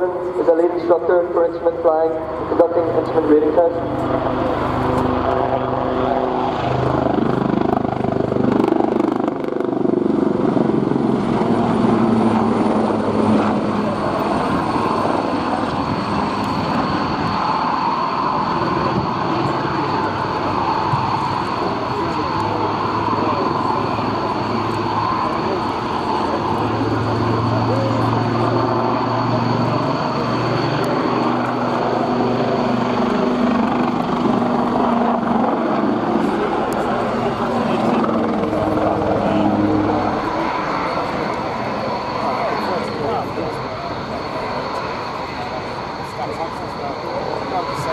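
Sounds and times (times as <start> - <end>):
helicopter flying: 0.0 - 47.9.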